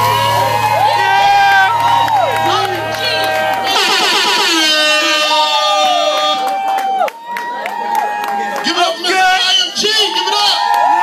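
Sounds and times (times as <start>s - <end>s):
backing track music: 0.0s - 7.1s
audience cheering and screaming: 0.0s - 11.0s.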